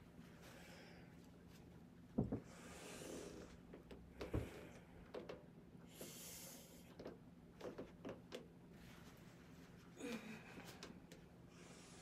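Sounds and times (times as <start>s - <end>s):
woman breathing: 0.4s - 1.3s, 2.4s - 5.1s, 5.8s - 7.0s, 9.9s - 12.0s.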